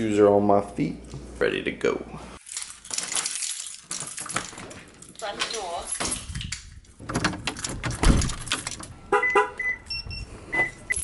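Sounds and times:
keys jingling: 0:02.4 - 0:09.0.

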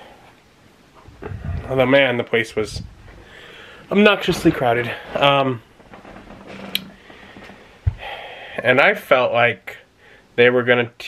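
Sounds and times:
faint steady hum: 0:00.0 - 0:11.0
short low thump: 0:07.8 - 0:08.1.

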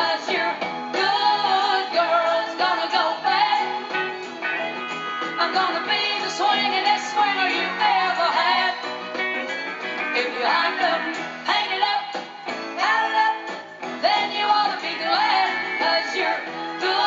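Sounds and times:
woman singing: 0:00.0 - 0:03.9, 0:05.4 - 0:08.9, 0:10.1 - 0:17.0
band with guitar playing: 0:00.0 - 0:17.0.

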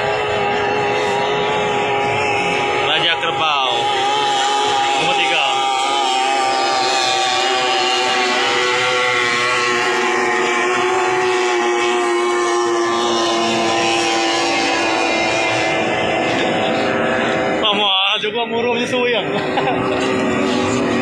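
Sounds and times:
outboard engines whining: 0:00.0 - 0:21.0.

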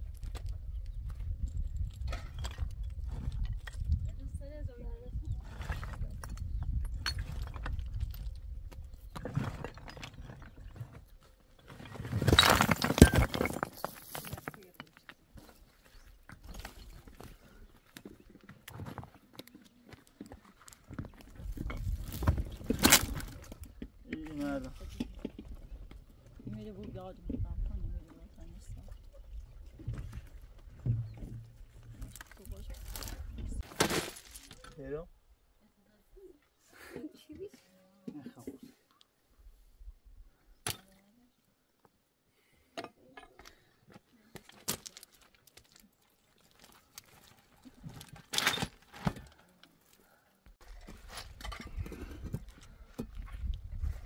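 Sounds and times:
rocks knocking and scraping on stone: 0:00.0 - 0:04.3, 0:05.4 - 0:34.8, 0:42.8 - 0:49.4, 0:50.6 - 0:54.0.

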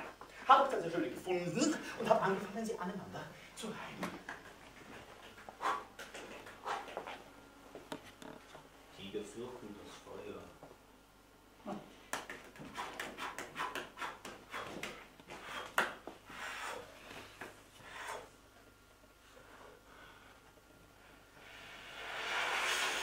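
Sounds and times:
breathy rush of air: 0:21.1 - 0:23.0.

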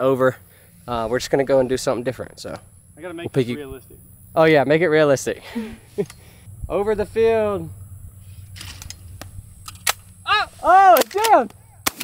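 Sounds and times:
shotgun shot: 0:11.0 - 0:12.0.

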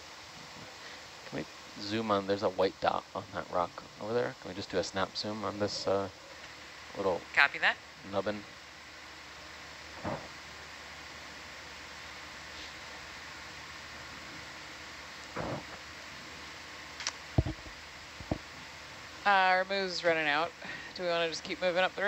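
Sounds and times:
steady background hiss: 0:00.0 - 0:22.0.

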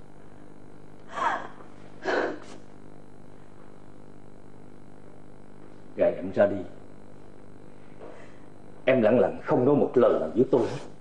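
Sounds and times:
woman sobbing: 0:01.1 - 0:02.4.

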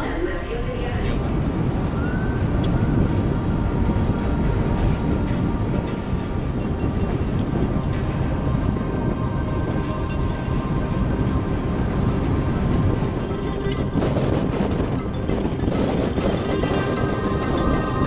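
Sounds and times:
ferry engine rumble: 0:00.0 - 0:18.0
wind on microphone: 0:00.0 - 0:18.0.

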